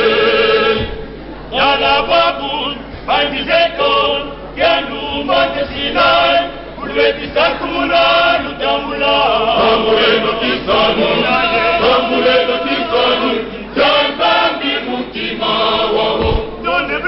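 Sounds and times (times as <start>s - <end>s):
male choir singing: 0.0s - 17.0s
low bump: 16.0s - 16.6s.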